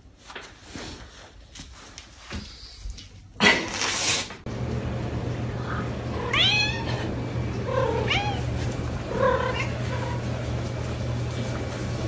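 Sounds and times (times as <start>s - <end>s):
cat meowing: 6.2s - 7.1s, 7.8s - 8.5s.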